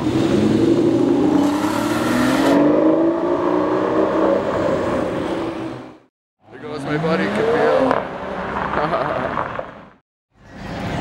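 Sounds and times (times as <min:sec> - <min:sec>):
car accelerating: 0:00.0 - 0:06.0, 0:06.6 - 0:09.5.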